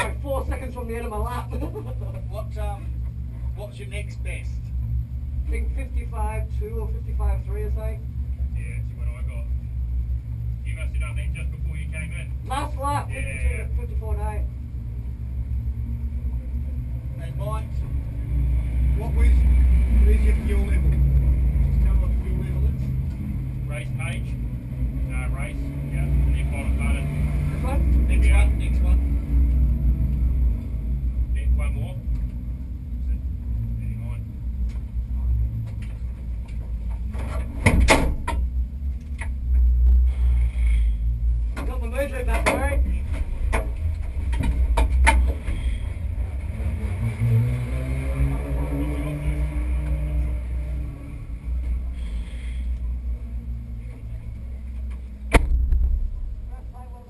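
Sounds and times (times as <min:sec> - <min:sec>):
low engine rumble: 0:00.0 - 0:57.0.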